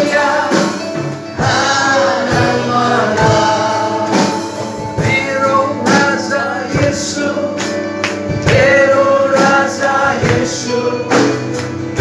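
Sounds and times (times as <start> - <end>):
congregation singing worship song: 0.0 - 12.0
guitar accompaniment: 0.0 - 12.0
steady beat: 0.0 - 12.0.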